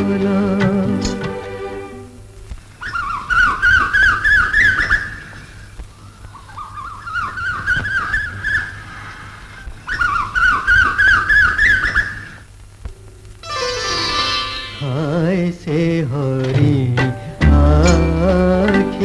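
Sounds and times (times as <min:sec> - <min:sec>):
high whistled bird-like call: 0:02.8 - 0:12.4.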